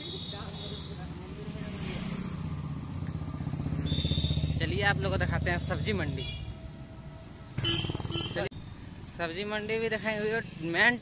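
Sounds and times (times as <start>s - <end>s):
motorcycle engine running: 7.6s - 8.4s.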